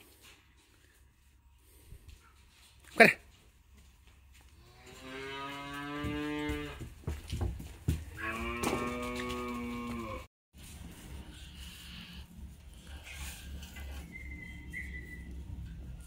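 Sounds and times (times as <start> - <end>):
cattle mooing: 4.6 - 6.8, 8.2 - 10.3.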